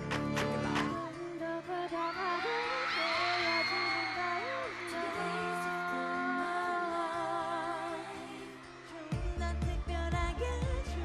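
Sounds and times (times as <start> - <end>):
woman singing: 0.0 - 11.0
synth chords and bass: 9.2 - 11.0.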